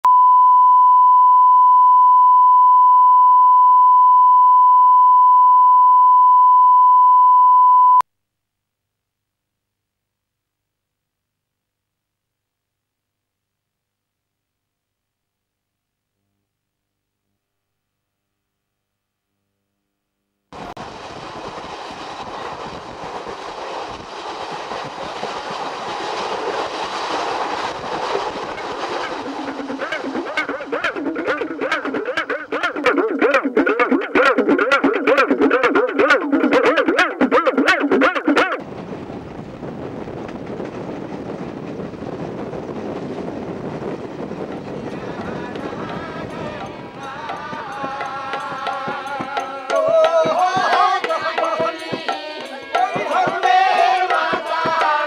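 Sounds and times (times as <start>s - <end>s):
steady pure test tone beep: 0.0s - 8.0s
train rumbling on rails: 20.6s - 35.3s, 37.2s - 50.4s.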